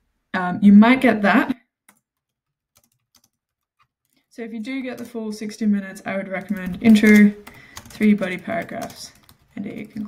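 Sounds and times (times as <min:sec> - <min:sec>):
faint keyboard typing: 0:01.9 - 0:10.0.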